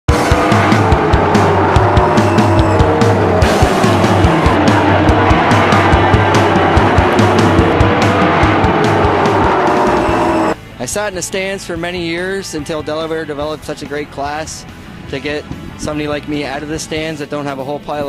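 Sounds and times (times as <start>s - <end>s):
music with steady drum beat: 0.1s - 10.6s
race car engines passing: 0.1s - 10.6s.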